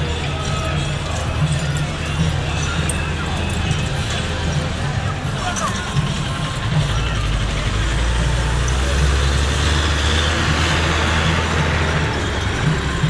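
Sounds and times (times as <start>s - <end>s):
bus engine droning: 0.0s - 13.0s.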